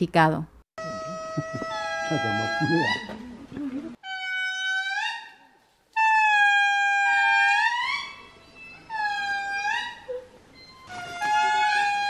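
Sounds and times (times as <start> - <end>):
indri wailing song: 0.8 - 3.3.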